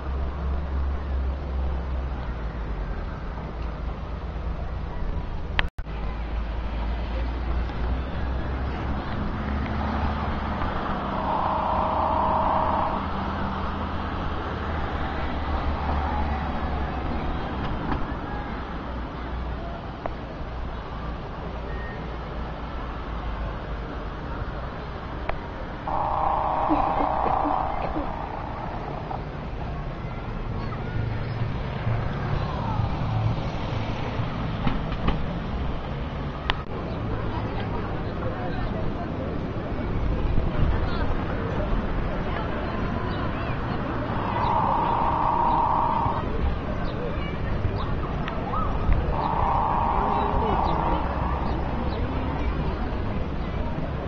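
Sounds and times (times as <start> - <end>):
low rumble of engines and traffic: 0.0 - 54.0
low outdoor rumble: 25.9 - 30.0, 48.5 - 54.0.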